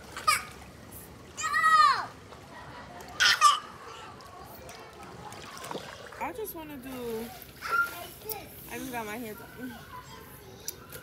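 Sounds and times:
water sounds: 0.0 - 11.0
child shouting: 1.4 - 2.1.

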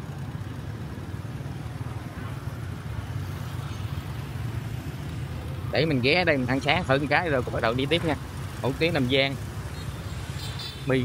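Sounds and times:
motorbike engines humming: 0.0 - 11.0
road noise: 0.0 - 11.0.

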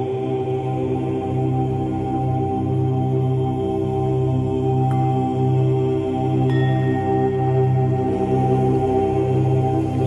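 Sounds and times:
sustained musical drone: 0.0 - 10.0.

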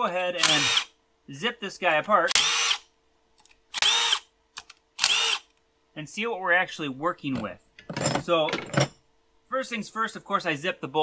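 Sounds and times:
power tool whining: 3.8 - 4.2, 5.0 - 5.5.

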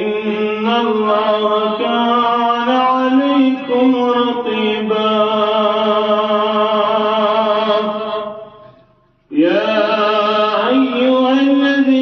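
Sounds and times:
man chanting: 0.0 - 8.6, 9.3 - 12.0.

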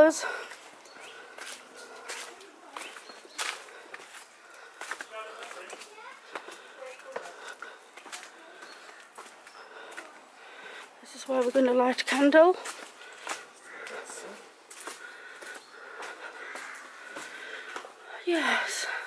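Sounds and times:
footsteps on stone and leaves: 0.1 - 18.0.

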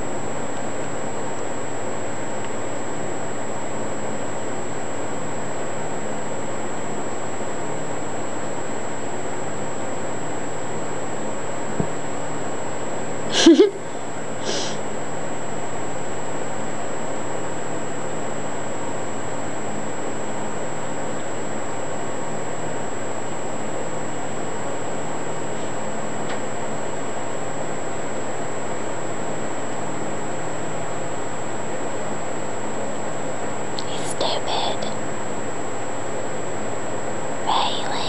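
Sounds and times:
faint high whine: 0.0 - 38.0.

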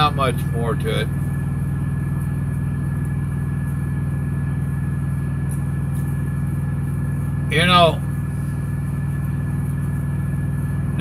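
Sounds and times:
truck diesel engine idling: 0.0 - 11.0.

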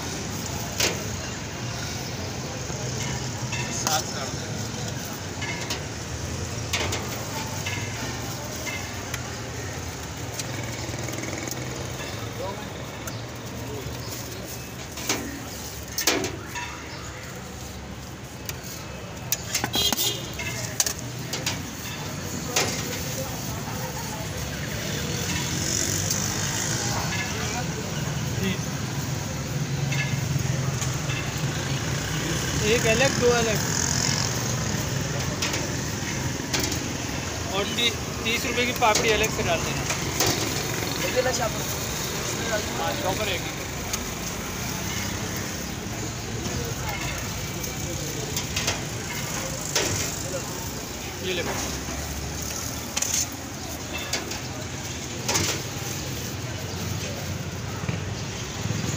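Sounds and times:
traffic noise with low hum: 0.0 - 58.9.

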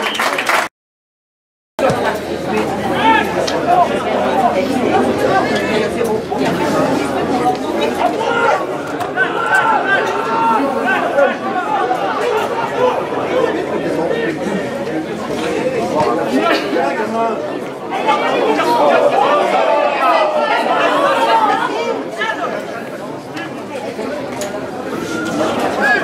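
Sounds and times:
crowd chatter: 1.8 - 26.0.

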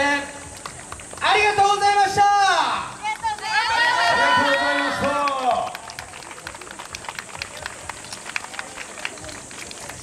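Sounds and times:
sharp claps and clacks: 0.4 - 1.6, 4.7 - 10.0
murmur of voices: 2.8 - 10.0.

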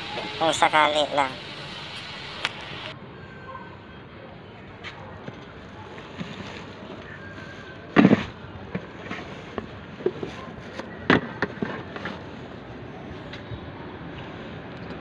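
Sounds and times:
background hiss: 0.0 - 3.0
steady background noise: 0.0 - 15.0.

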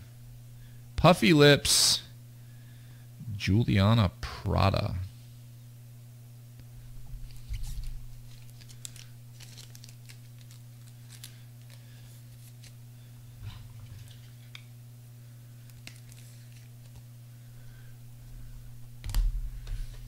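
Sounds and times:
steady low hum: 0.0 - 20.0
plastic packaging crinkling: 7.2 - 12.8, 15.6 - 17.0.

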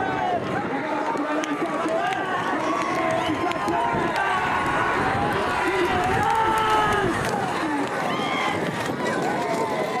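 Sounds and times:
bullock carts galloping on dirt: 0.0 - 10.0
crowd shouting and whistling: 0.0 - 10.0
steady outdoor noise: 0.0 - 10.0.

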